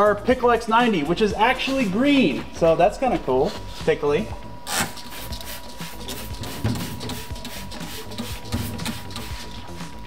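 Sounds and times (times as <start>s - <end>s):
spray bottle squirting: 4.7s - 9.9s.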